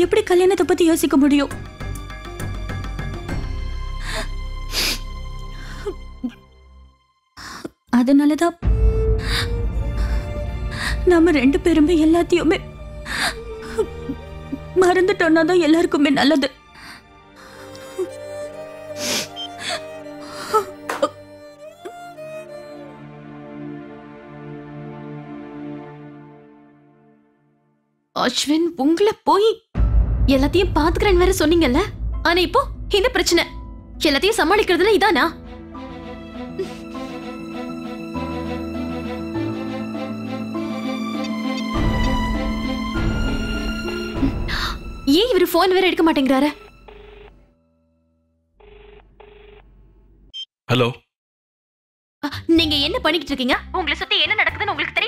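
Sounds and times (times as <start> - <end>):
background music with held tones: 8.6 - 28.0, 32.1 - 47.9
woman sobbing: 13.0 - 14.7, 19.0 - 21.2, 36.6 - 37.2
telephone ringback tone: 46.8 - 47.4, 48.6 - 49.6.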